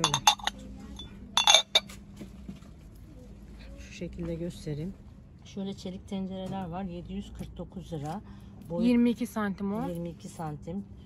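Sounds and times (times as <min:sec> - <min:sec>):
glass lid clinking on bowl: 0:00.0 - 0:01.9.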